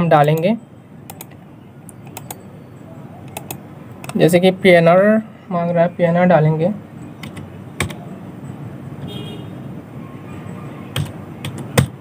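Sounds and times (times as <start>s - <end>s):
steady low background noise: 0.0s - 12.0s.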